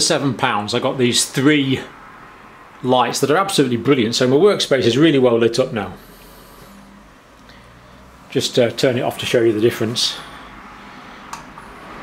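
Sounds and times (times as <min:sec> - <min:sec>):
quiet room hiss: 0:00.0 - 0:12.0.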